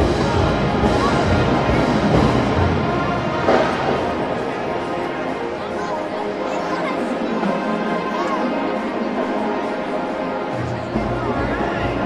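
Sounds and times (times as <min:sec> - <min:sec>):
low drums: 0:00.0 - 0:05.1
marching band playing: 0:00.0 - 0:05.5.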